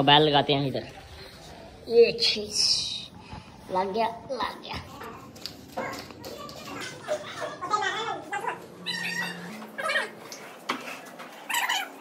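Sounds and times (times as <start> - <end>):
animal cries: 8.8 - 10.2, 11.4 - 12.0.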